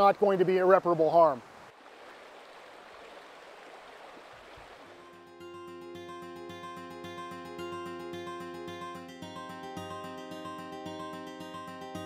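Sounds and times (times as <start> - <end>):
stream rushing over rocks: 0.0 - 5.0.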